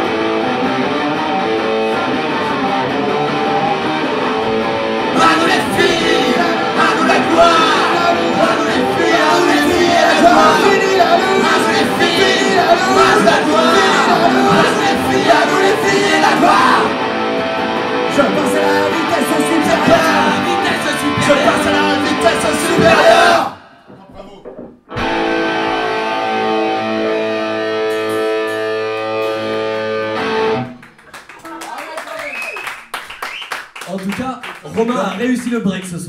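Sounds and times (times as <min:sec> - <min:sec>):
acoustic band with guitar: 0:00.0 - 0:31.1
held guitar chord ringing: 0:25.0 - 0:30.8.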